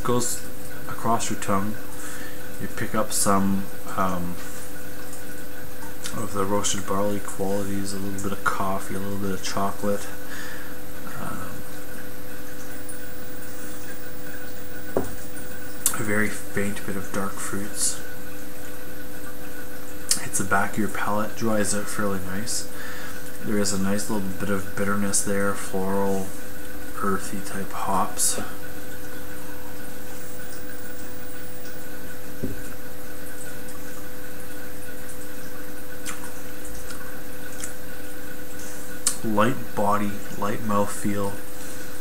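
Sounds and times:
electrical hum and hiss: 0.0s - 42.0s
steady background hiss: 35.9s - 42.0s.

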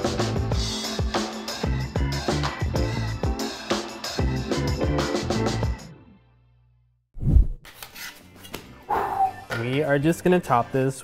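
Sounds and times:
background music: 0.0s - 6.8s, 7.7s - 11.0s.

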